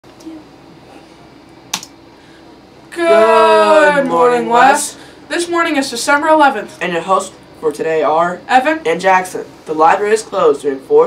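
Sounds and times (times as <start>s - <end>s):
sharp click: 1.7s - 2.0s.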